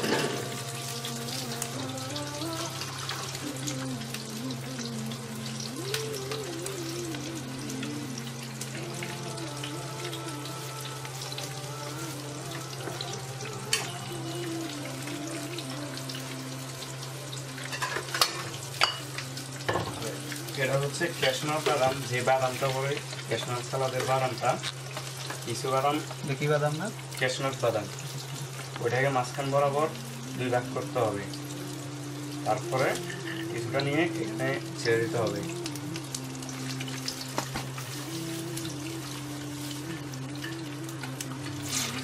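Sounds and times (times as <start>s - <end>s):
nuts sizzling in hot oil: 0.0s - 42.0s.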